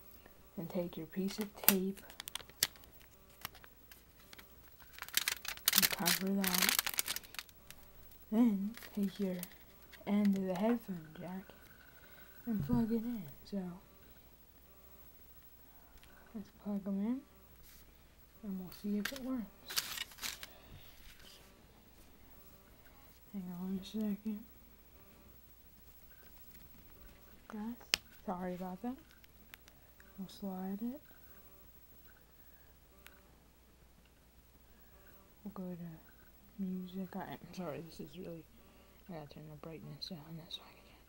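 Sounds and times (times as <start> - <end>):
faint room hiss: 0.0 - 41.0
aluminium foil crinkling: 1.2 - 12.4, 18.7 - 21.4, 25.8 - 29.7
clicks and rustles of handling: 1.2 - 12.8, 18.7 - 21.4.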